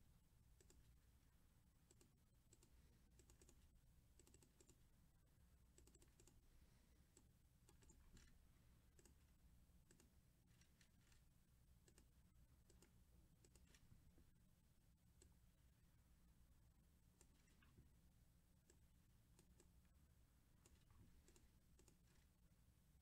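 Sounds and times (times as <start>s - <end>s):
keyboard and mouse clicks: 0.6s - 0.9s, 1.9s - 4.8s, 5.8s - 6.4s, 7.1s - 9.2s, 9.9s - 11.2s, 11.8s - 13.9s, 17.2s - 17.8s, 18.6s - 19.8s, 20.6s - 22.3s.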